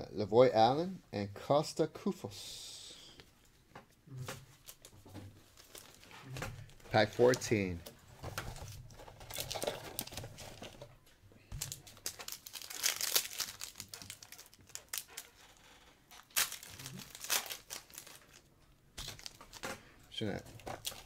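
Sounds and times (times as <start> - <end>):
wrapper tearing and crinkling: 5.5 - 6.1, 8.6 - 10.8, 11.6 - 21.0.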